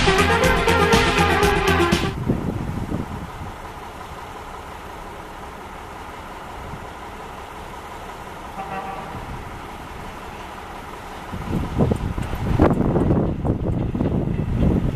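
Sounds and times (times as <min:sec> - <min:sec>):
intro music: 0:00.0 - 0:02.2
diesel locomotive low rumble: 0:00.0 - 0:14.9
wind: 0:00.0 - 0:14.9.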